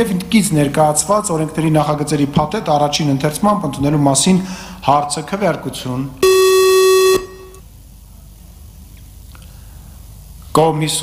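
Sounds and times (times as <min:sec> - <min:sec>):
electronic buzzing tone: 0:06.2 - 0:07.6.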